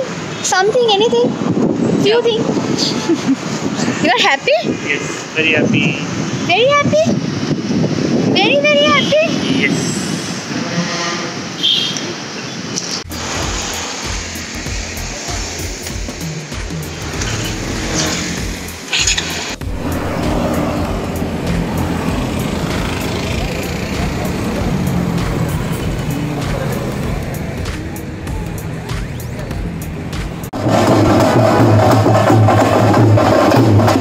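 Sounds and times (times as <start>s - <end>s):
city street traffic: 0.0s - 34.0s
wind buffeting microphone: 0.5s - 10.7s
loud procession drumming: 19.6s - 34.0s.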